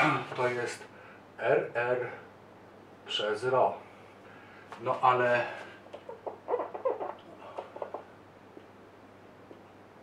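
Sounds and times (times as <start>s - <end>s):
marker squeaking on a whiteboard: 5.9s - 8.1s.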